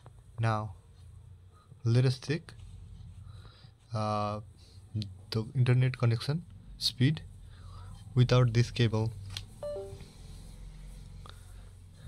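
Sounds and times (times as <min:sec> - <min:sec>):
two-tone falling chime: 0:09.6 - 0:10.0.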